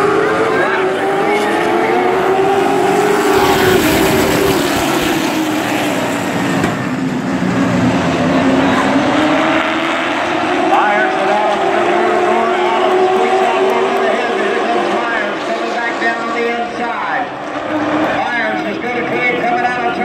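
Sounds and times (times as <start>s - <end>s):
stock car engines racing: 0.0s - 20.0s.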